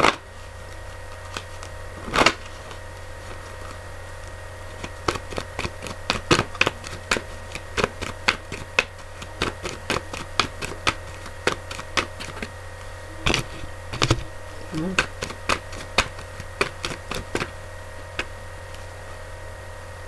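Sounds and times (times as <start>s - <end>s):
cards snapping while shuffled: 0.0s - 12.5s, 13.3s - 14.3s, 15.0s - 18.9s
low hum: 0.0s - 20.0s.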